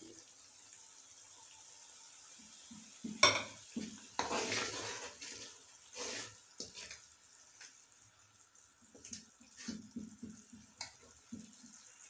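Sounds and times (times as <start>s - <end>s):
faint sizzle of frying: 0.0s - 12.0s
metal spoon scraping a metal pan: 4.2s - 7.0s.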